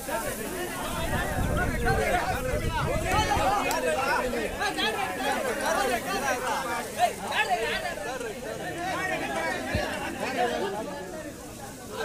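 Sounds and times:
crowd chattering: 0:00.0 - 0:12.0.

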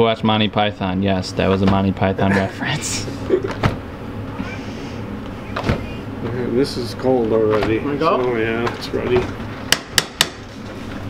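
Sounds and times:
steady low hum: 0:00.0 - 0:11.0
person laughing: 0:02.2 - 0:03.6, 0:04.4 - 0:05.0.

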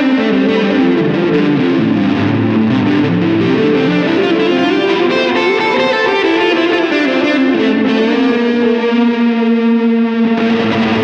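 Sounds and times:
electric guitar chord with reverb: 0:00.0 - 0:11.0.

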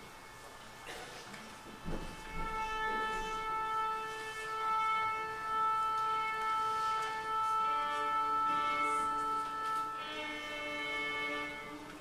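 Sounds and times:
orchestral instrument holding a note: 0:01.5 - 0:12.0.

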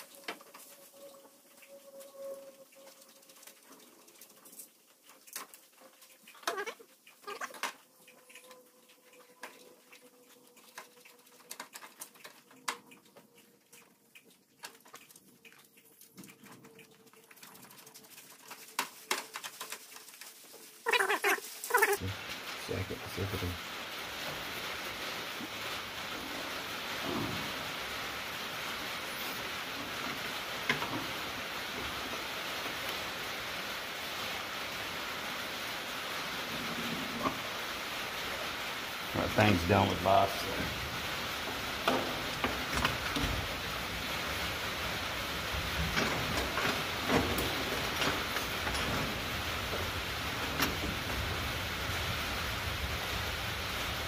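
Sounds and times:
steady hiss: 0:17.2 - 0:54.0.

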